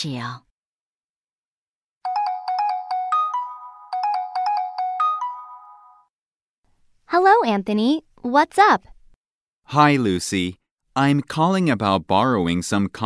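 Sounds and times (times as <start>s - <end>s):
phone ringtone melody: 2.0s - 6.2s.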